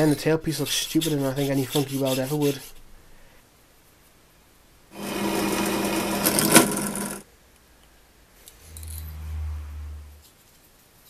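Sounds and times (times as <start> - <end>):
small electric tool motor: 5.0 - 7.2
low hum: 8.5 - 10.4.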